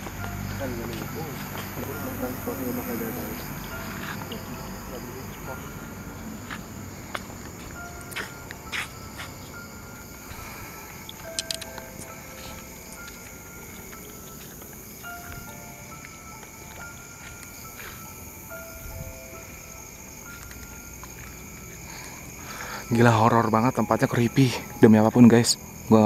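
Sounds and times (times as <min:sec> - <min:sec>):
crickets chirring: 0:00.0 - 0:26.0
slow melody of held notes: 0:00.0 - 0:26.0
sharp clicks: 0:11.1 - 0:12.2.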